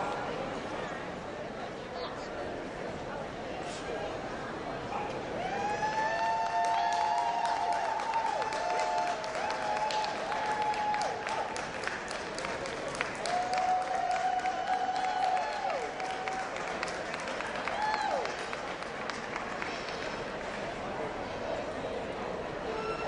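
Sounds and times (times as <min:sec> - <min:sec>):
audience applauding: 0:05.6 - 0:20.5.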